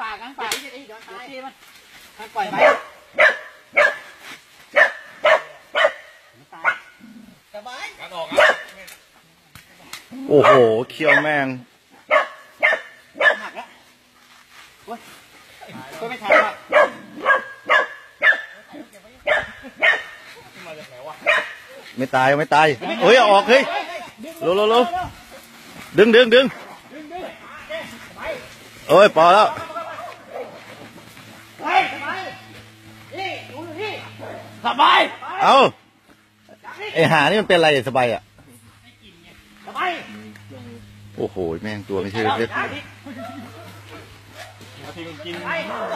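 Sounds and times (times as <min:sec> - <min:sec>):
dog barking and yelping: 0:02.5 - 0:07.0, 0:08.3 - 0:08.7, 0:10.3 - 0:11.4, 0:12.0 - 0:13.7, 0:16.2 - 0:18.6, 0:19.2 - 0:20.3, 0:21.2 - 0:21.8.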